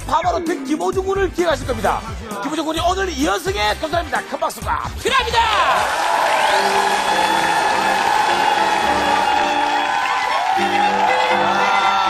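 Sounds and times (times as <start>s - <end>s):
upbeat stage music: 0.0s - 12.0s
audience applauding and cheering: 5.0s - 12.0s.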